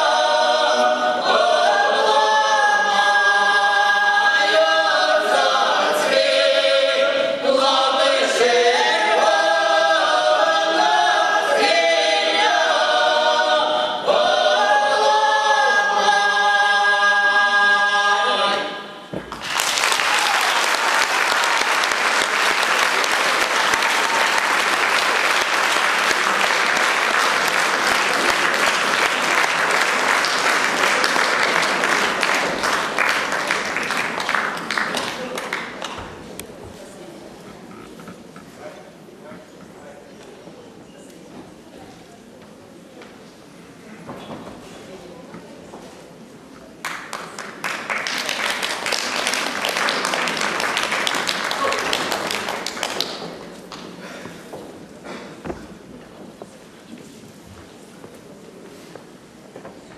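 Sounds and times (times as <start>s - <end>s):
folk vocal ensemble singing: 0.0s - 19.4s
audience applause: 19.2s - 36.2s, 46.8s - 54.0s.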